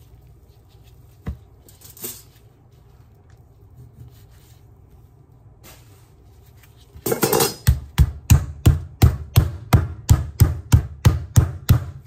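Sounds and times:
meat being pounded: 0:07.1 - 0:12.0.

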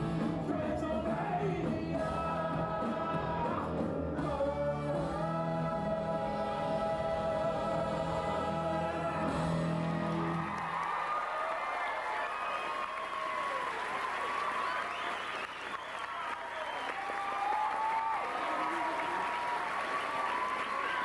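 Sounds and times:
music: 0:00.0 - 0:10.7
audience applauding and cheering: 0:08.4 - 0:21.0.

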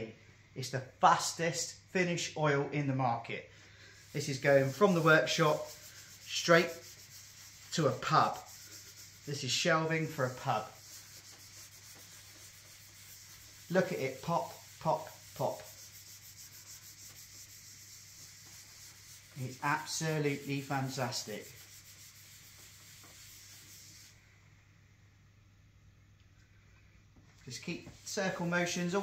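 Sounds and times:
cloth pad rubbing wood: 0:04.0 - 0:24.2.

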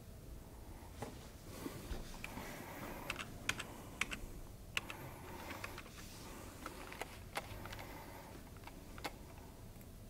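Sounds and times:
keyboard typing: 0:03.0 - 0:06.0, 0:06.6 - 0:09.4.

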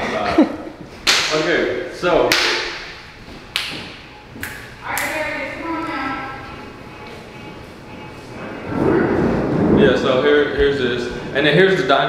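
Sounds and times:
voices: 0:04.8 - 0:12.0.

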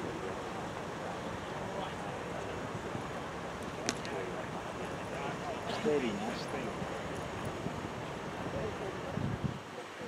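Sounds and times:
faint distant voices: 0:00.0 - 0:10.0
outdoor background noise: 0:00.0 - 0:10.0.

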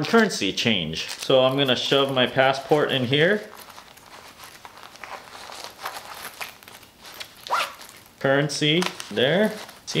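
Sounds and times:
fabric rustling: 0:01.0 - 0:10.0
zipper being worked: 0:03.5 - 0:08.2.

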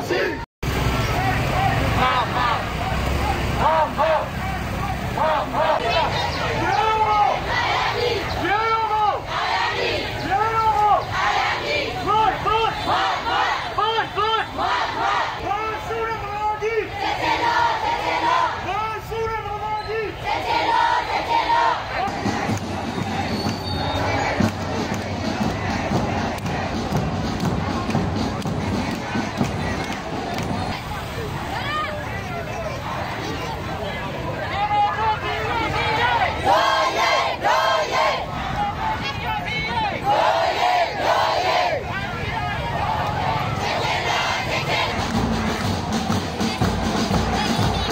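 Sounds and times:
crowd chanting in unison: 0:00.0 - 0:00.5, 0:01.1 - 0:19.2, 0:19.8 - 0:47.9
din of crowd voices: 0:00.0 - 0:47.9.

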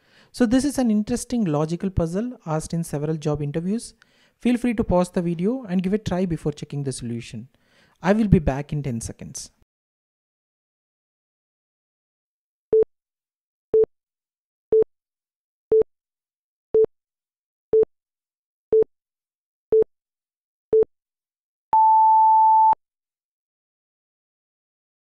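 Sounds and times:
long high beep: 0:21.8 - 0:22.8.

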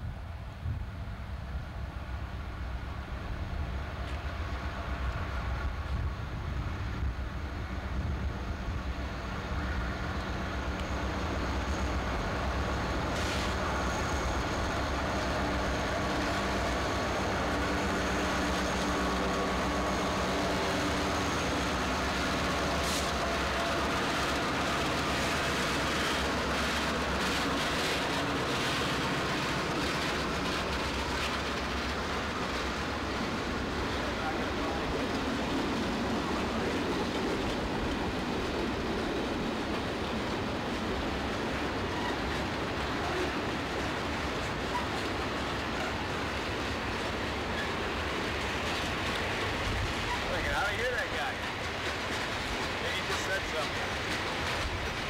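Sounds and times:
diesel locomotive engine drone: 0:00.0 - 0:55.0
train wheels clicking over rail joints: 0:09.5 - 0:55.0.

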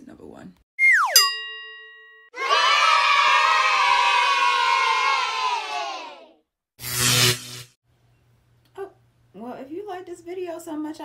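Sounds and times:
falling glide into ringing chime: 0:00.8 - 0:02.3
children cheering: 0:02.4 - 0:06.4.

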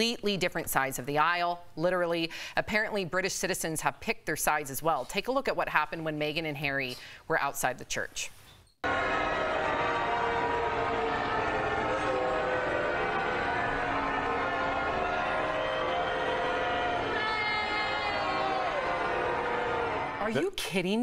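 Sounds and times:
crowd booing: 0:08.8 - 0:20.5.

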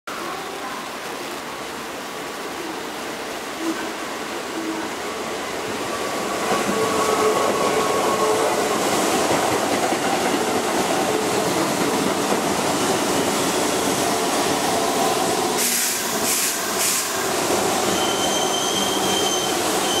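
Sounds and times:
train wheels rumbling: 0:05.2 - 0:20.0
high wheel squeal: 0:17.8 - 0:20.0.

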